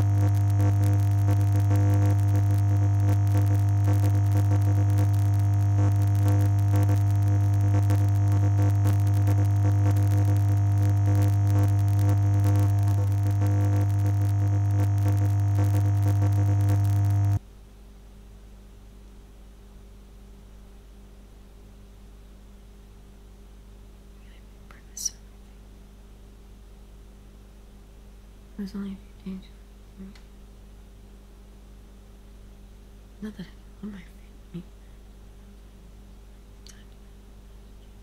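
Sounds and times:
faint hiss and hum: 0:00.0 - 0:38.0.

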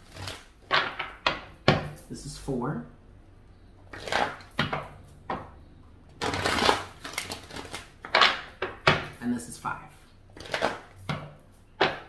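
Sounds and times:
cards rustling shuffle: 0:06.2 - 0:08.8, 0:10.4 - 0:11.2
cards slapping and snapping: 0:06.2 - 0:09.2, 0:10.4 - 0:12.0.

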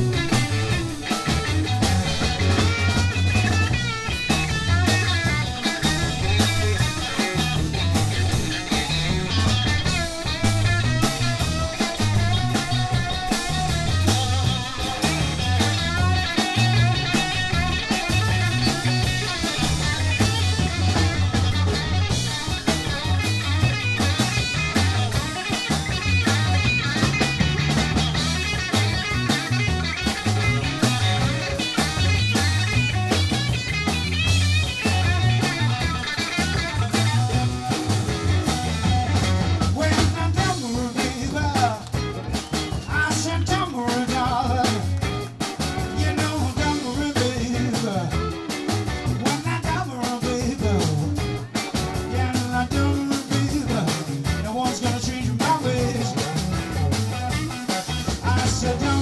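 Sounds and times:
electric bass: 0:00.0 - 0:59.0
electric guitar leading: 0:00.0 - 0:59.0
steady drum beat: 0:00.0 - 0:59.0.

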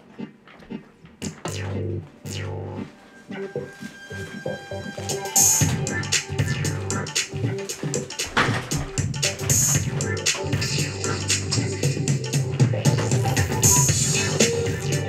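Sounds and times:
electronic keyboard music: 0:00.0 - 0:15.0.

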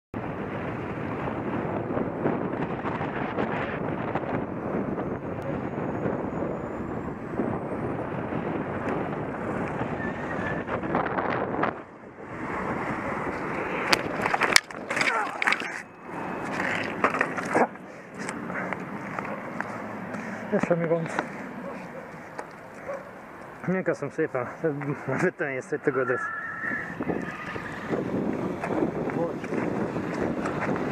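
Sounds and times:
wind on microphone: 0:00.2 - 0:17.1, 0:26.1 - 0:30.9
wheels rolling on road: 0:00.2 - 0:30.9.

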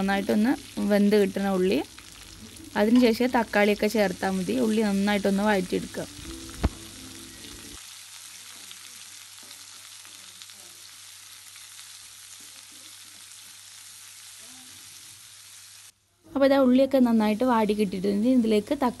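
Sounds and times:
onions sizzling in hot oil: 0:00.0 - 0:16.0, 0:16.9 - 0:19.0.

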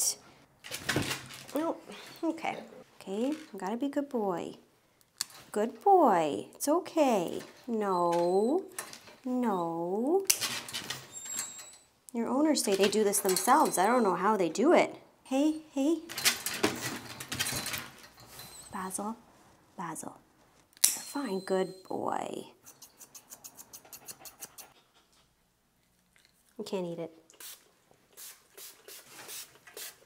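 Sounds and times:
spray bottle squirts: 0:27.4 - 0:30.0.

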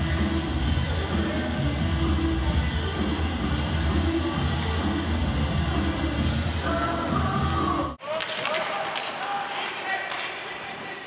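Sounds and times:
voices in an arena: 0:00.0 - 0:05.0, 0:06.6 - 0:11.0
music with heavy bass beat: 0:00.0 - 0:08.0.

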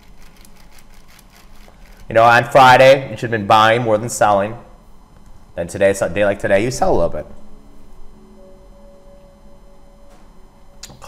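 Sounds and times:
keyboard typing: 0:00.0 - 0:02.1
low steady hum: 0:00.0 - 0:11.0.

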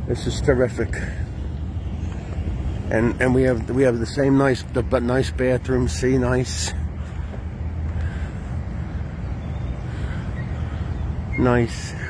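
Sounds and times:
low outdoor background rumble: 0:00.0 - 0:12.0.

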